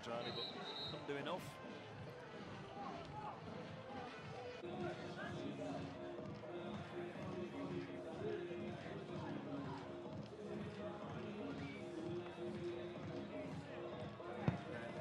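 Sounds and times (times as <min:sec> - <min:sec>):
crowd voices: 0:00.0 - 0:15.0
music playing: 0:00.0 - 0:15.0.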